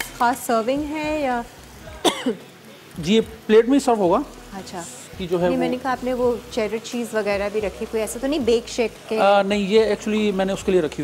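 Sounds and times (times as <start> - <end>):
food sizzling in a pan: 0.0 - 11.0
person talking: 5.2 - 5.9.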